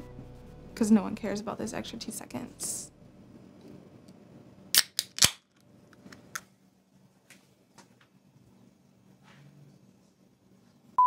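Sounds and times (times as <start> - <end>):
drink can ring-pull cracking open: 4.8 - 5.4.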